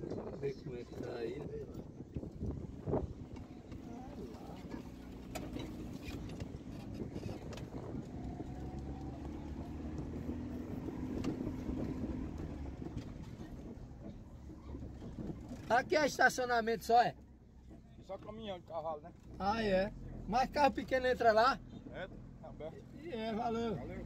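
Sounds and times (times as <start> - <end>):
car engine and road rumble: 0.0 - 24.0.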